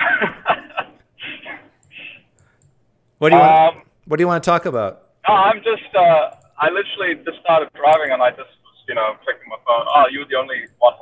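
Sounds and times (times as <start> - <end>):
faint clicks: 1.8 - 3.2.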